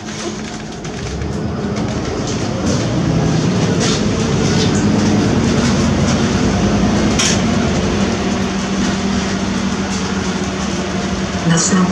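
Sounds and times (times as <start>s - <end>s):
bus diesel engine droning: 0.0s - 11.9s
road and body noise: 0.0s - 11.9s.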